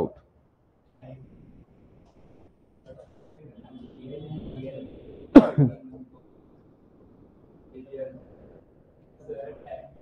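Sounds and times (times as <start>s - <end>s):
man coughing: 5.4s - 5.8s.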